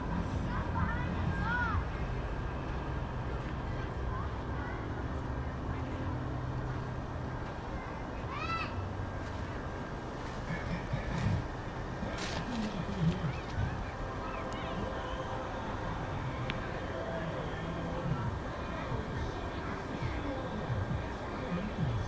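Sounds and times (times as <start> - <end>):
low hum and rumble: 0.0 - 22.0.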